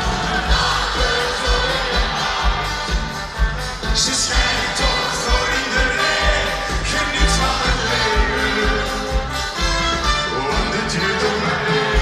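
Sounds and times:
crowd singing along: 0.0s - 12.0s
live pop music: 0.0s - 12.0s.

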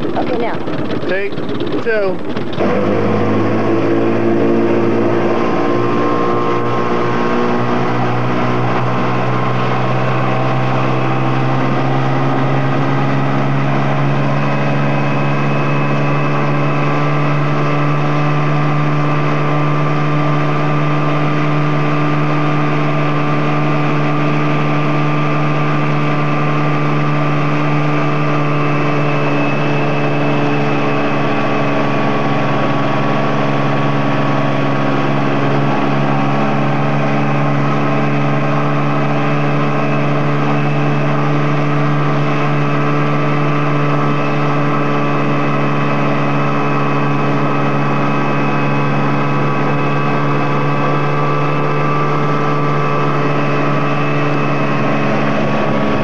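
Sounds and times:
motorboat engine running: 0.0s - 56.0s.

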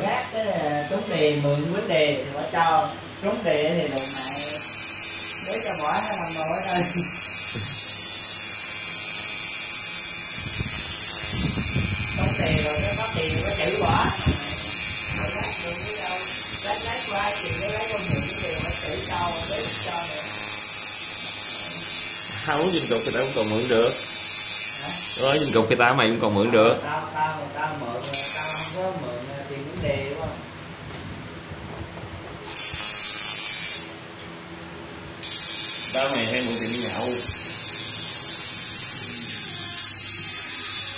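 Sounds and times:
tattoo machine buzzing: 4.0s - 25.7s, 28.0s - 28.9s, 32.5s - 34.3s, 35.1s - 40.9s.

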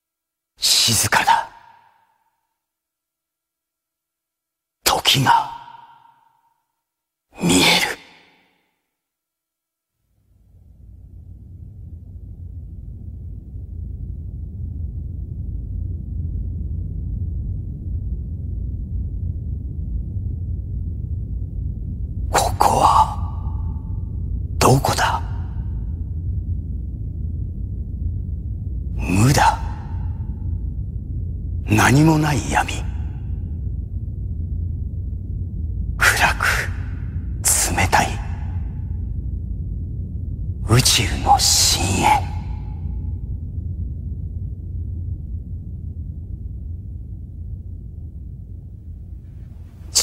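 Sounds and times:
man speaking with echo: 0.6s - 1.8s, 4.9s - 6.1s, 7.4s - 8.4s, 22.3s - 23.6s, 24.6s - 25.6s, 29.0s - 30.2s, 31.7s - 33.2s, 36.0s - 38.7s, 40.6s - 42.8s
steady low rumble: 9.5s - 50.0s.

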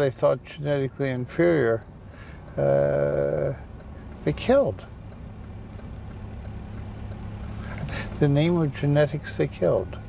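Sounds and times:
car engine and road hum: 0.0s - 10.0s.

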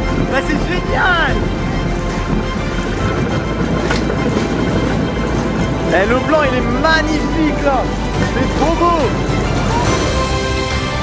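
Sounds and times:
steel wheels rumbling on rail track: 0.0s - 11.0s.

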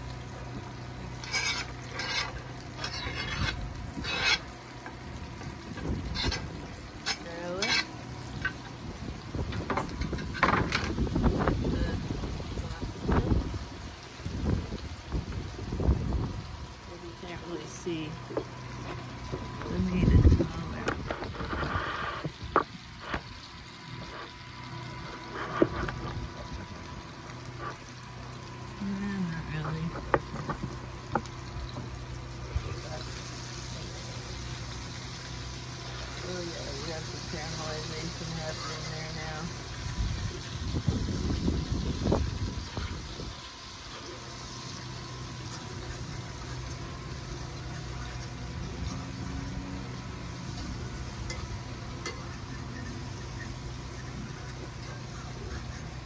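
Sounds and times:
food frying in a skillet: 0.0s - 56.0s.

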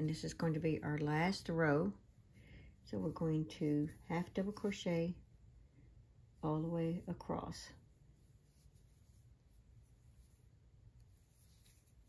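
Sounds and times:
crochet hook rubbing yarn: 8.1s - 12.0s.

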